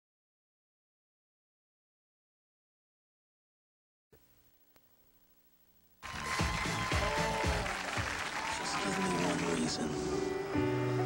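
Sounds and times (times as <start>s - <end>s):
whoops: 6.0s - 9.4s
audience applauding and cheering: 6.0s - 10.2s
music: 6.0s - 11.0s.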